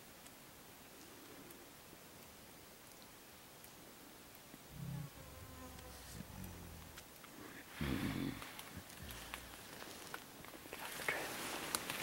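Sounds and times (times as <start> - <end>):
insect buzzing: 4.7 - 7.2.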